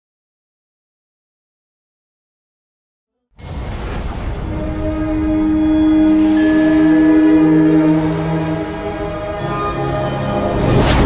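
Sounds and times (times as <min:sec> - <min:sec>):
film score held chords: 0:03.2 - 0:11.0.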